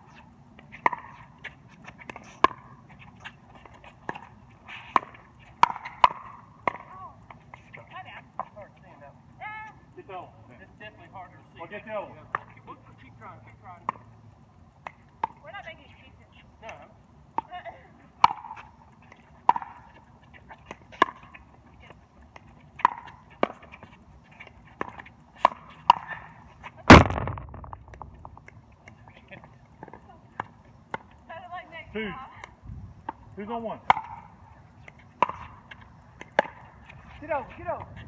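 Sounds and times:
loud impact with ringing tail: 26.9s - 28.1s
paddles striking plastic ball: 26.9s - 28.5s.

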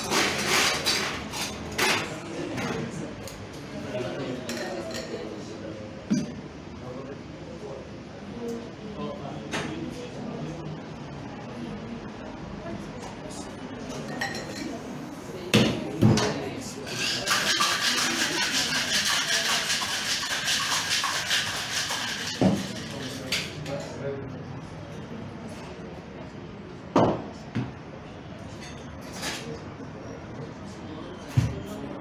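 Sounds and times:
ice rattling in cocktail shaker: 16.9s - 23.6s
shaker tins knocking: 16.9s - 23.6s.

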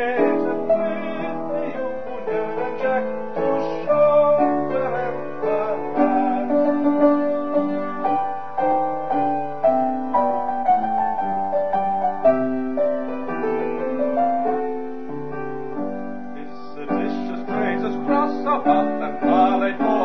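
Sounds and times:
piano chords and melody: 0.0s - 20.0s.

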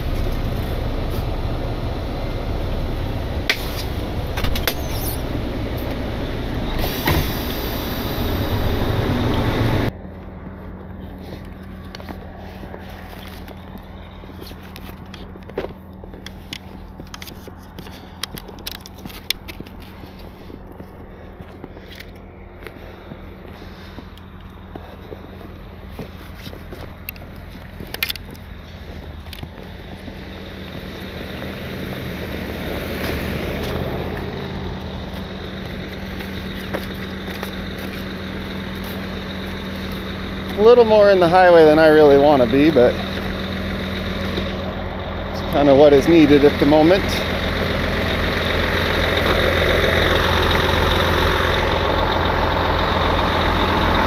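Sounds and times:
low engine hum: 0.0s - 54.0s
footsteps crunching in snow: 10.2s - 40.6s
scrapes and clicks: 11.1s - 22.8s.

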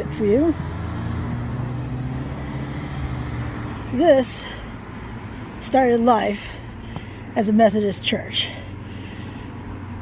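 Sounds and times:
car passing slowly: 0.0s - 10.0s
road noise: 0.0s - 10.0s.

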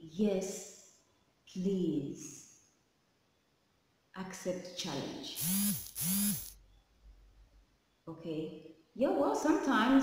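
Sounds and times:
woman speaking: 0.0s - 0.8s, 1.5s - 2.4s, 4.2s - 5.4s, 8.1s - 10.0s.

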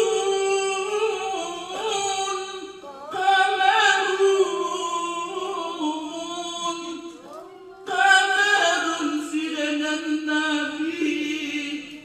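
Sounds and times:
person singing devotional chant: 0.0s - 12.0s.

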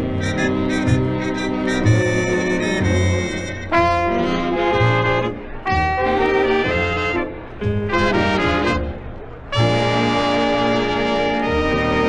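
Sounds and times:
big band brass and saxophones: 0.0s - 12.0s.

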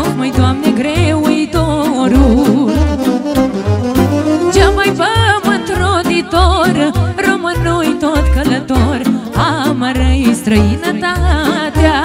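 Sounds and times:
woman singing: 0.0s - 3.1s, 4.5s - 12.0s
accordion: 0.0s - 12.0s
keyboard: 0.0s - 12.0s.

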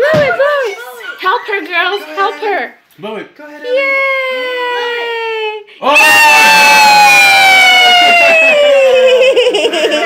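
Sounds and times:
child giggling: 8.2s - 10.0s.

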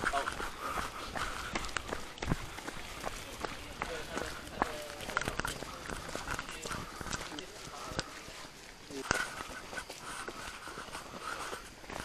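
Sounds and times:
footsteps on wet dirt path: 0.0s - 12.0s
indistinct chatter: 0.0s - 12.0s.

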